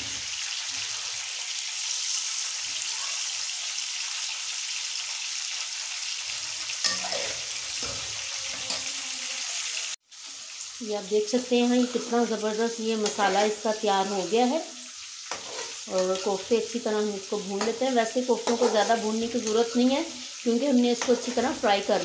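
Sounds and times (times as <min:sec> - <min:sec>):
meat sizzling in hot oil: 0:00.0 - 0:22.0.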